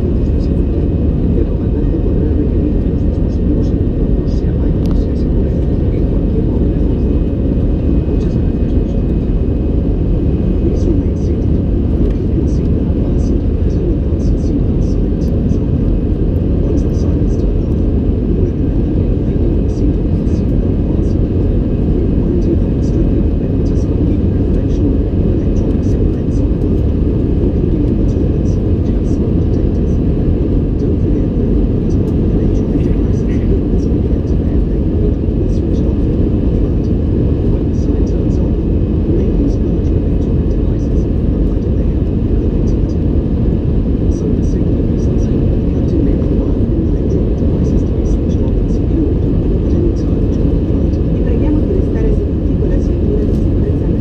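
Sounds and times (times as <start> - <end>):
airliner cabin rumble: 0.0 - 54.0.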